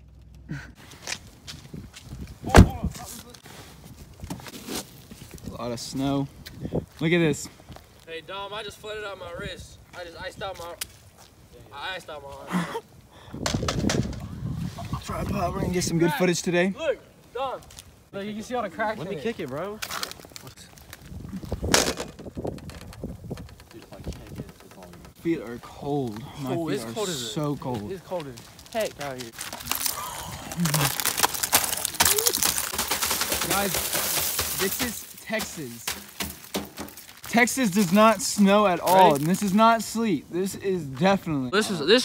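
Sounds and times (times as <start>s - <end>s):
crunches of snow: 0.6s - 8.1s, 26.1s - 40.1s
small ice crackles and ticks: 19.2s - 21.6s, 22.2s - 26.3s, 27.5s - 39.7s
ice cracking on metal sign: 30.6s - 39.5s.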